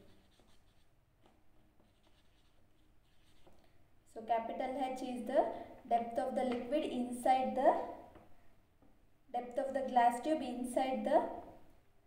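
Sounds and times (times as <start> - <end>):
pen scratching on paper: 0.0 - 3.6.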